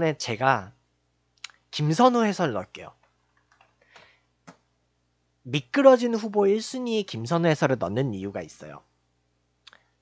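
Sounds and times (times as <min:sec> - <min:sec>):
faint keyboard keystrokes: 0:03.0 - 0:04.7.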